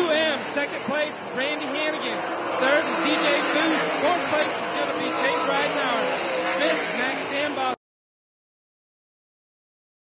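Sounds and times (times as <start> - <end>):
announcer commentary: 0.0 - 7.8
race car engines running: 0.0 - 7.8.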